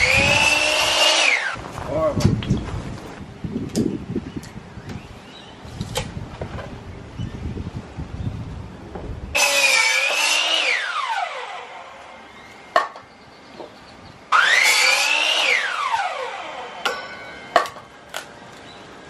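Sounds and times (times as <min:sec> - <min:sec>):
miter saw cutting board: 0:00.0 - 0:01.6, 0:09.4 - 0:12.2, 0:14.3 - 0:17.0.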